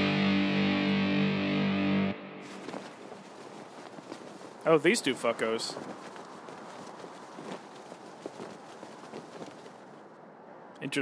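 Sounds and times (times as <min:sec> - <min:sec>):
horse hoofbeats: 0:02.5 - 0:10.0.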